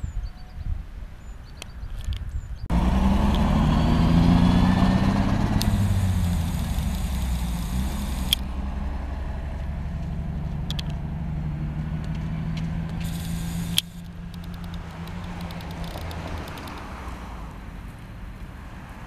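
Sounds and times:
bus diesel engine accelerating: 0:02.6 - 0:19.0.

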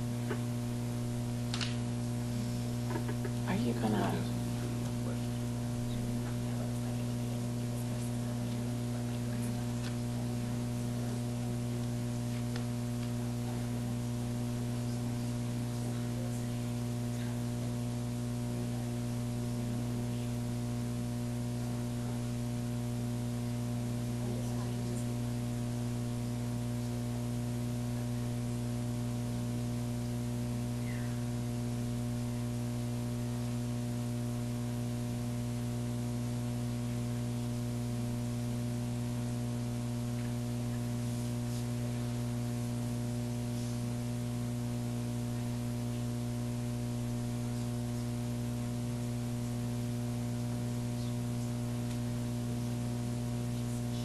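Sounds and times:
electrical mains hum: 0:00.0 - 0:54.0.

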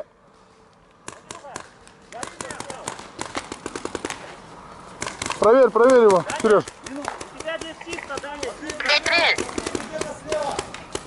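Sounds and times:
paintball markers firing: 0:01.0 - 0:04.3, 0:05.0 - 0:11.0.

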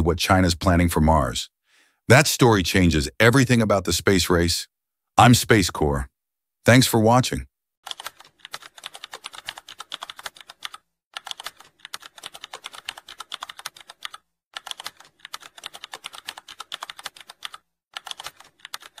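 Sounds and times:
computer keyboard typing: 0:07.8 - 0:19.0.

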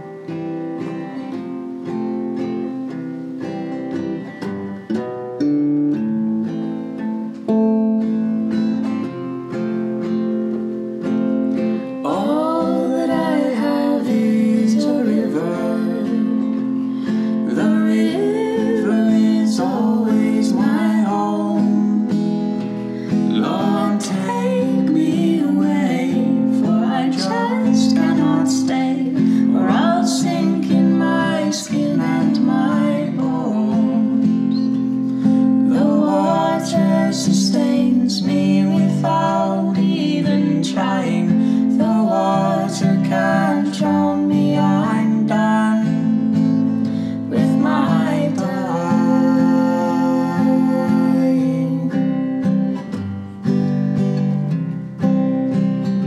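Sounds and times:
acoustic guitar: 0:00.0 - 0:56.0
man and woman singing duet: 0:11.6 - 0:52.8.

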